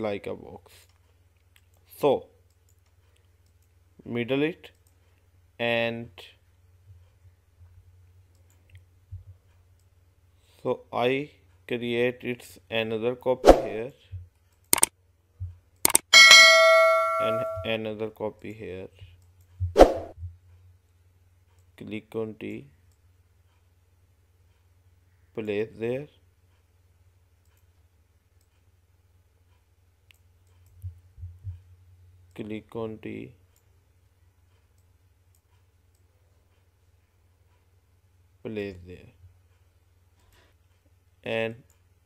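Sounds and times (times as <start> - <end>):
mouse double click: 14.7 - 14.9, 15.8 - 16.0
notification bell ding: 16.2 - 17.8.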